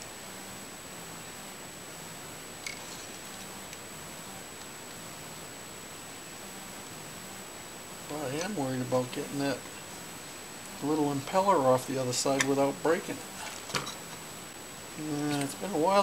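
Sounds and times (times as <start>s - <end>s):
faint high whine: 0.0s - 16.0s
steady hiss: 0.0s - 16.0s.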